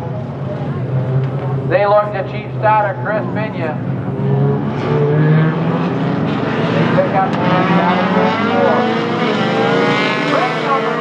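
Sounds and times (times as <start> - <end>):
race car engines revving: 0.0 - 11.0.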